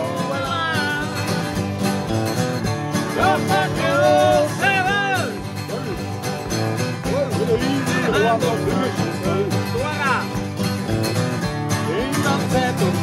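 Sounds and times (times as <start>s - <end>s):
acoustic guitars strumming: 0.0s - 13.0s.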